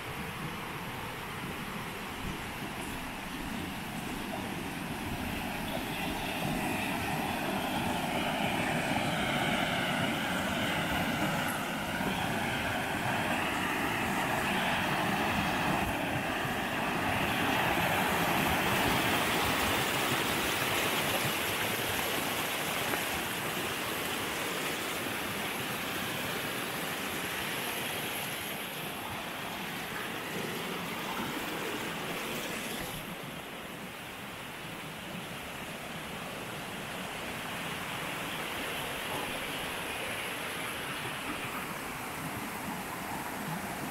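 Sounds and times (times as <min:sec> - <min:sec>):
river water rushing over rocks: 0:00.0 - 0:43.9.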